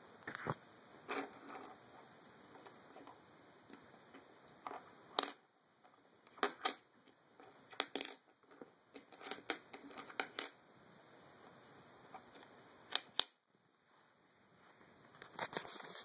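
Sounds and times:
coins sliding on wooden table: 1.1s - 1.8s, 3.8s - 5.4s, 7.4s - 10.6s.

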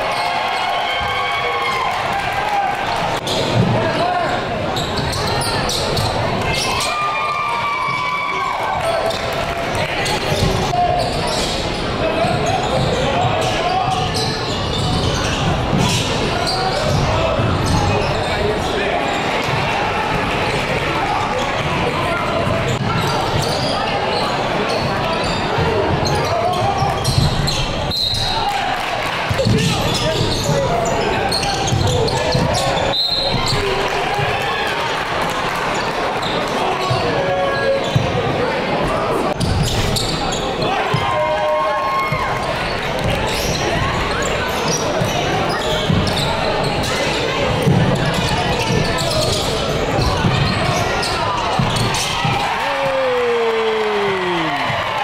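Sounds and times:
crowd murmuring: 42.3s - 55.0s.

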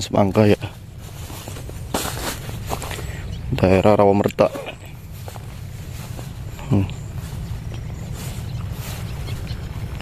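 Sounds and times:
footsteps on dry straw: 0.0s - 10.0s
straw rustling: 0.0s - 10.0s.

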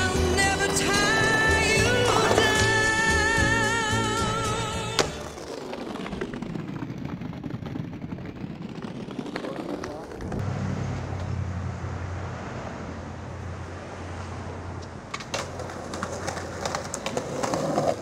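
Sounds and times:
traffic: 4.2s - 18.0s.

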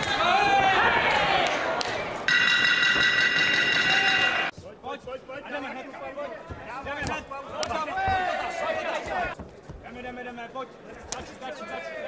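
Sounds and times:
high-pitched ringing tone: 2.3s - 4.5s.

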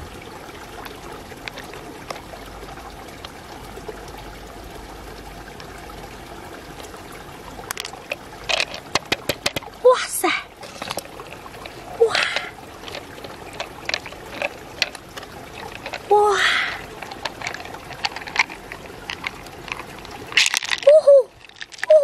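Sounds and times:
wet squelching of mussel flesh: 10.6s - 16.1s, 16.7s - 22.0s
sharp wet clicks: 10.9s - 16.1s, 16.7s - 22.0s.

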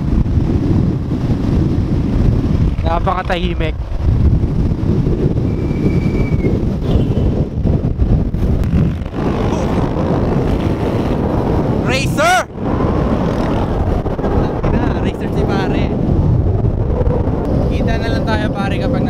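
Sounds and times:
wind buffeting microphone: 0.0s - 19.0s.

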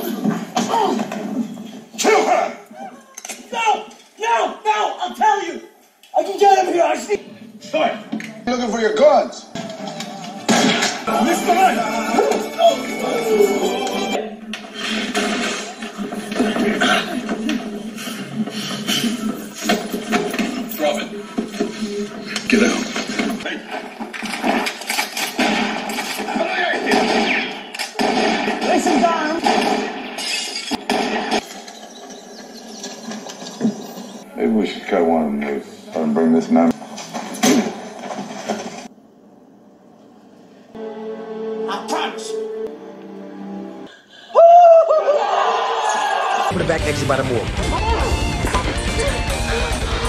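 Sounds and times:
noisy scuffle commotion: 0.0s - 8.8s, 9.5s - 29.4s
indistinct voices: 9.5s - 14.7s
thin music: 9.6s - 14.3s, 40.8s - 43.9s.

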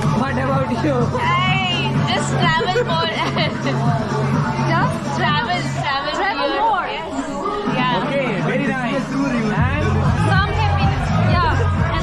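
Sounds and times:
music with heavy bass: 0.0s - 5.8s, 9.5s - 12.0s.

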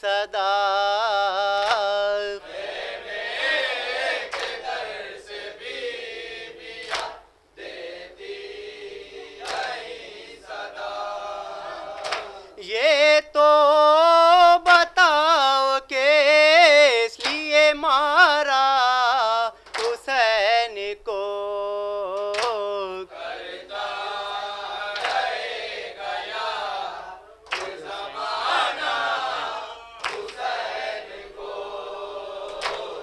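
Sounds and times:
man singing a lament solo: 0.0s - 2.4s, 12.6s - 23.1s
sharp slaps: 1.6s - 1.9s, 4.2s - 4.6s, 6.8s - 7.2s, 9.4s - 9.7s, 12.0s - 12.4s, 17.2s - 17.5s, 19.6s - 20.1s, 22.2s - 22.7s, 24.9s - 25.3s, 27.4s - 27.8s, 30.0s - 30.4s, 32.5s - 33.0s
group chanting: 1.6s - 12.7s, 23.0s - 33.0s.

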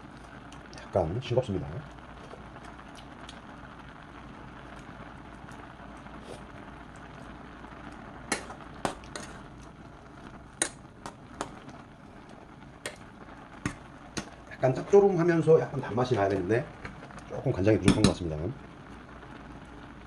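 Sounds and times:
beans bubbling in a pot: 0.0s - 20.0s.

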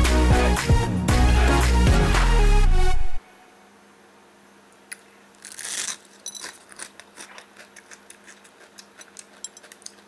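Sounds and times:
crunch of biting taco shell: 5.4s - 10.0s.

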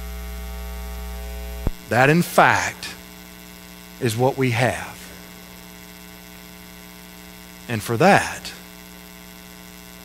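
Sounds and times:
buzzy electrical mains hum: 0.0s - 10.0s.

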